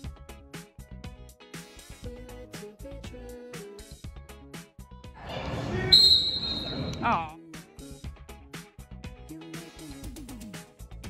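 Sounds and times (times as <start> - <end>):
referee's whistle blast: 5.8 - 7.3.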